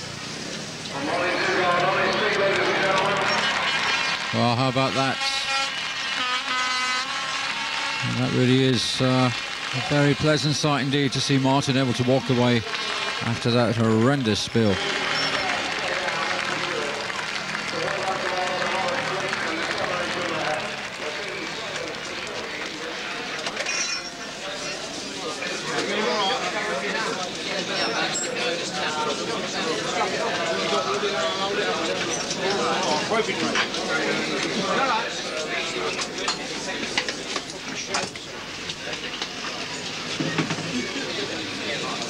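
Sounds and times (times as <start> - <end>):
background hubbub: 0.0 - 42.0
crowd noise: 0.0 - 42.0
people talking: 0.9 - 6.5, 7.1 - 23.6, 24.2 - 42.0
horn blasts: 4.9 - 8.4.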